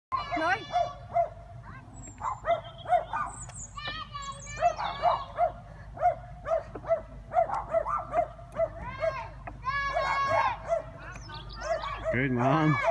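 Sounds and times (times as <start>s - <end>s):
children calling out: 0.1s - 5.7s, 8.2s - 12.9s
dog yapping: 0.2s - 1.4s, 2.1s - 3.5s, 4.5s - 12.9s.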